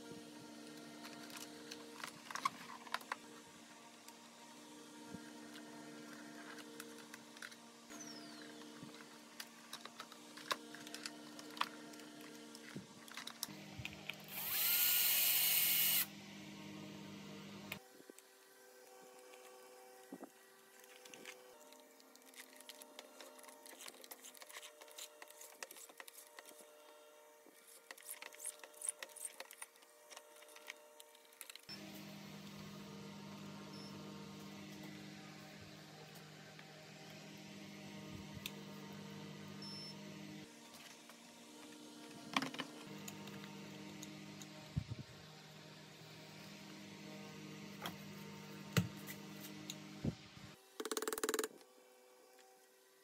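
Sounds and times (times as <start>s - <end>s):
low electrical hum: 0.0s - 50.7s
electric screwdriver whining: 14.1s - 16.1s.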